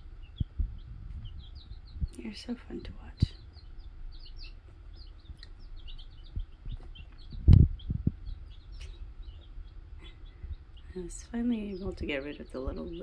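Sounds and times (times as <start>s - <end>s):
baby chicks peeping: 0.0s - 13.0s.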